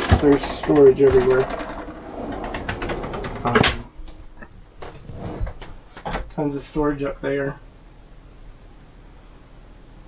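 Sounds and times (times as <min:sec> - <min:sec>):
drawer knocking shut: 0:00.0 - 0:03.9
drawer clicking and rattling: 0:00.0 - 0:06.4.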